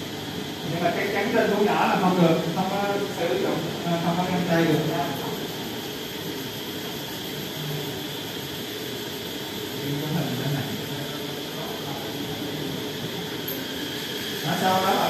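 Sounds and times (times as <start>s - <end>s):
fan-like room noise: 0.0s - 15.0s.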